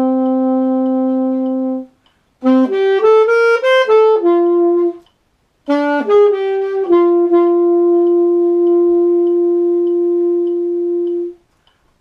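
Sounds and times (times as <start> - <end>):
alto saxophone long note: 0.0 - 5.0, 5.7 - 11.4.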